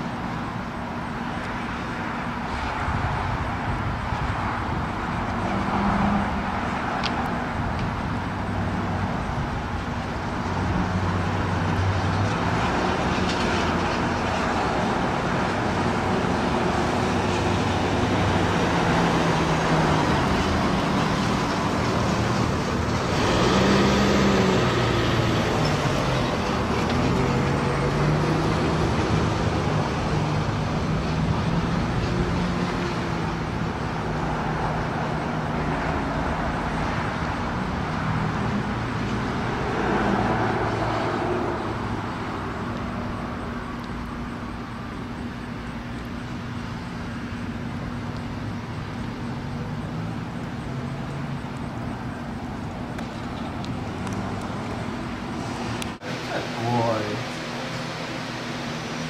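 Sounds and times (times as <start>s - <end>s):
road traffic passing: 0.0s - 59.0s
loud vehicle passing: 1.5s - 44.7s, 46.5s - 59.0s.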